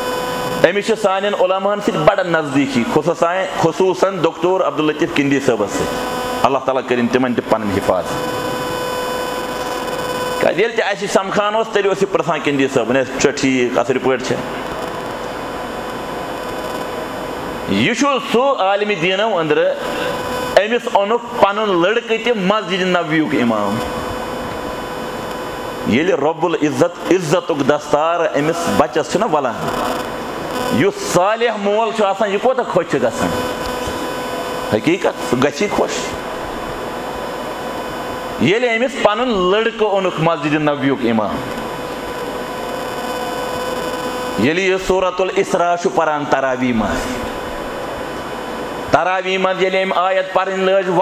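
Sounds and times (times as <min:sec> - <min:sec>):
faint even hum: 0:00.0 - 0:51.0
steady background hiss: 0:00.0 - 0:51.0
man speaking: 0:00.6 - 0:08.2, 0:10.4 - 0:14.5, 0:17.7 - 0:24.0, 0:25.8 - 0:29.9, 0:30.7 - 0:34.1, 0:34.7 - 0:36.2, 0:38.4 - 0:41.6, 0:44.4 - 0:47.4.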